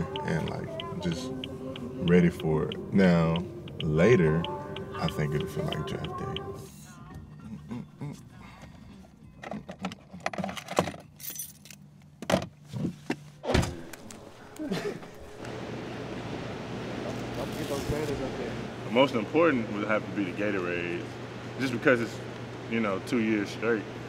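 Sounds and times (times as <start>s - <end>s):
keys jangling: 10.4s - 11.9s.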